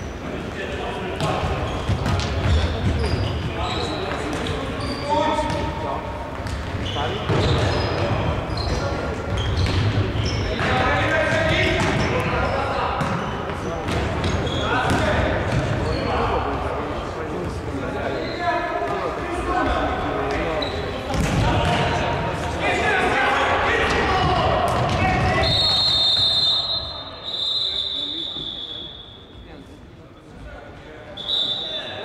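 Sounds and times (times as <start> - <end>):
shoes squeaking on floor: 1.2 - 5.7, 6.4 - 10.8, 11.9 - 15.0, 20.0 - 21.7
players shouting: 21.2 - 26.8.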